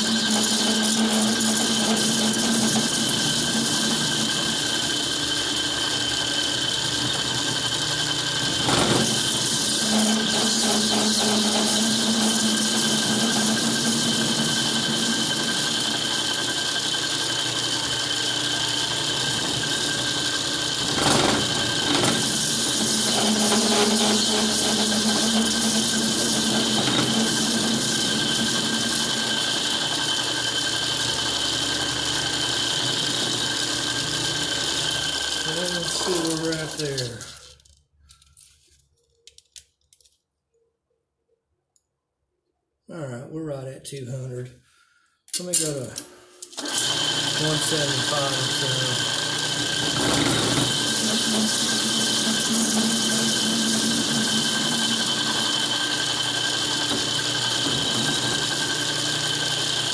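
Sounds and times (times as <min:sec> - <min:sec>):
metal lathe whining: 0:00.0 - 0:37.6, 0:46.5 - 0:59.9.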